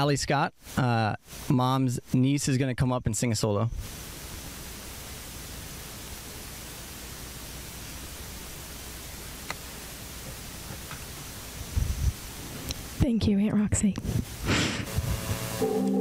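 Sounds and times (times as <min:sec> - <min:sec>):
open-air background hiss: 0:00.0 - 0:16.0
faint clicks: 0:09.4 - 0:09.6.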